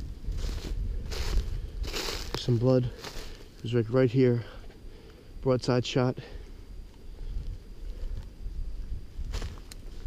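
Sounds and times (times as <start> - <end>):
footsteps in snow over dry leaves: 0.2 - 3.8.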